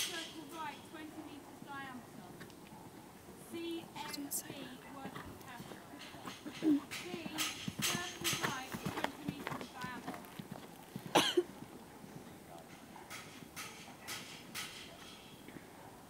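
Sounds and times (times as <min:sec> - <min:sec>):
horse hoofbeats on sand: 0:00.0 - 0:15.7
people talking quietly: 0:00.0 - 0:16.0.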